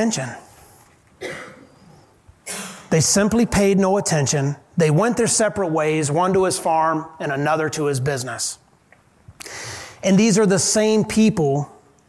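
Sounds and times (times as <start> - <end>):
short cough: 1.2 - 1.8, 2.4 - 2.9
person speaking: 2.8 - 8.7, 9.4 - 11.8
breathy hiss: 9.4 - 10.1.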